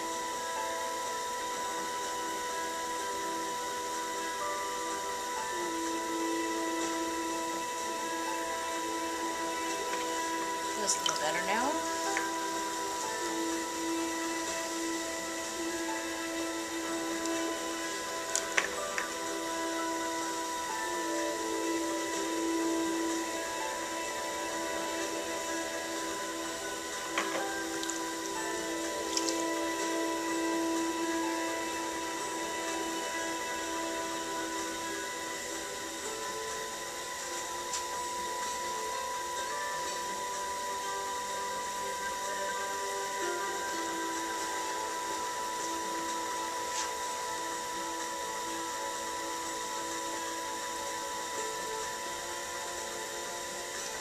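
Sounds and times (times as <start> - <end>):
potter's wheel motor whine: 0.0 - 54.0.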